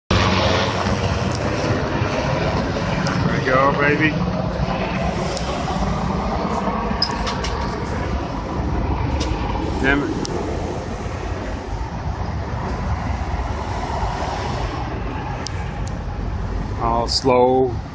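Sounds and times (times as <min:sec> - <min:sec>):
helicopter rotor chop: 0:00.1 - 0:17.9.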